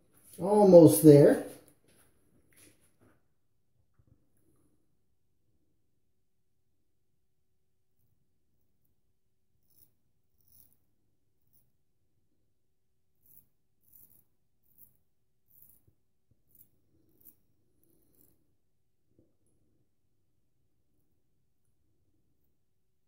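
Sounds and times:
straight razor scraping stubble: 0:09.6 - 0:11.7.

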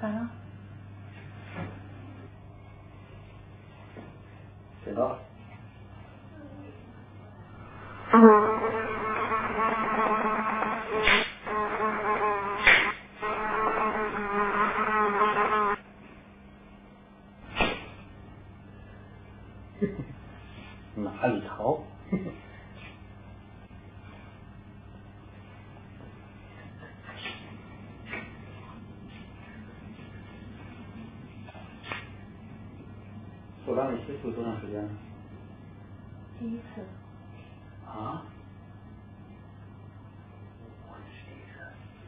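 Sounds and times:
low hum: 0:00.0 - 0:12.2
housefly buzzing: 0:07.7 - 0:15.8
loud hand claps: 0:11.0 - 0:11.4, 0:12.6 - 0:13.0
rubber glove snapping: 0:12.6 - 0:13.0.

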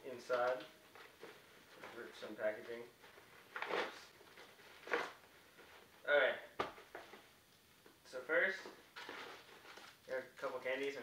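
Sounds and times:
paper rustling: 0:00.2 - 0:05.9, 0:08.9 - 0:10.1.

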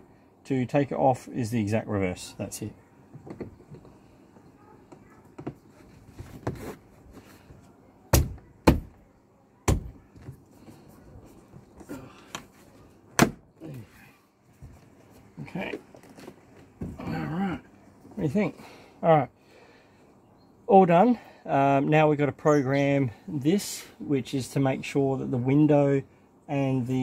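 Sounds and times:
handling rustle: 0:13.7 - 0:16.9.

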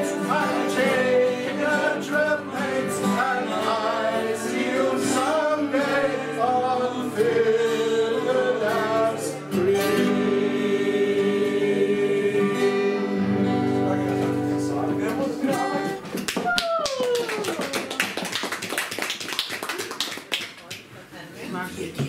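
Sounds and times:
people singing: 0:00.0 - 0:13.7
acoustic guitars strumming: 0:00.0 - 0:16.3.

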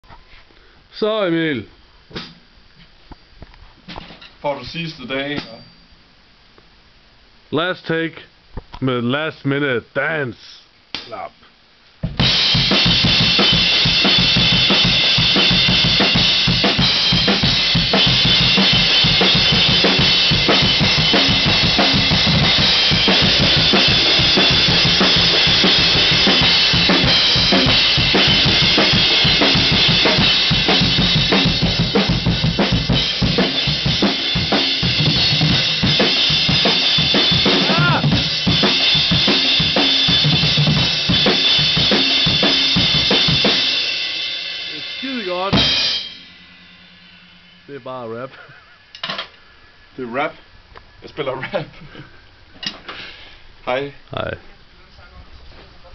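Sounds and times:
cymbals crashing: 0:12.2 - 0:51.0.

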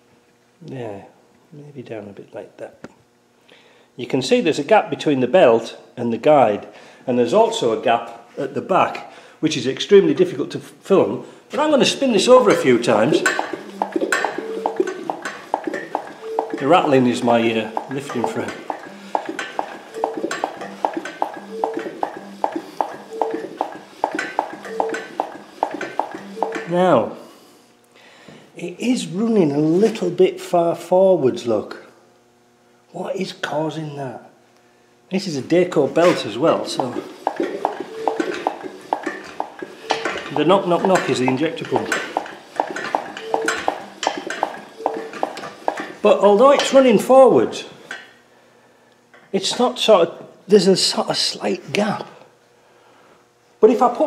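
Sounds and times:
injection pump knocking: 0:12.4 - 0:26.7, 0:36.1 - 0:46.0
engine frame rattle: 0:13.2 - 0:26.7, 0:36.9 - 0:46.0.

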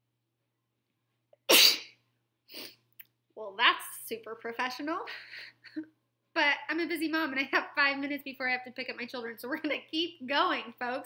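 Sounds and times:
woman sneezing: 0:01.5 - 0:02.0.

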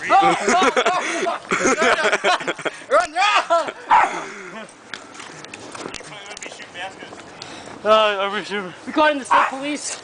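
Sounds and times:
small dog barking: 0:03.9 - 0:04.1, 0:09.3 - 0:09.6.

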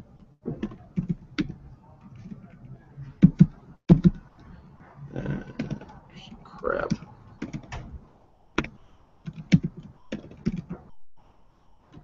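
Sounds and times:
computer keyboard typing: 0:00.6 - 0:02.6, 0:03.2 - 0:04.4, 0:05.4 - 0:06.0, 0:06.8 - 0:07.9, 0:08.6 - 0:10.9
murmured voice: 0:04.8 - 0:07.1.

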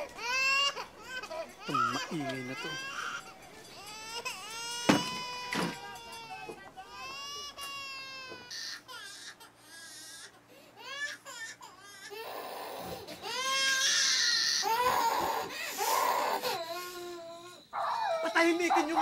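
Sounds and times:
baby crying: 0:00.0 - 0:19.0.

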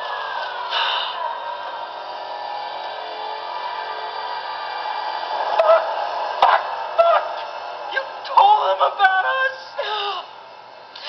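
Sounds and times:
horror soundtrack drone: 0:00.0 - 0:11.0.

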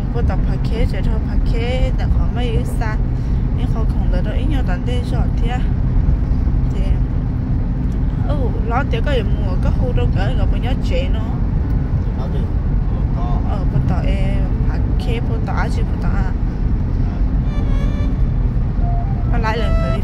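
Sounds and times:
people talking: 0:00.0 - 0:03.0, 0:03.6 - 0:05.7, 0:06.7 - 0:07.0, 0:08.2 - 0:11.4, 0:12.2 - 0:16.4, 0:18.8 - 0:20.0
car engine and road noise: 0:00.0 - 0:20.0.

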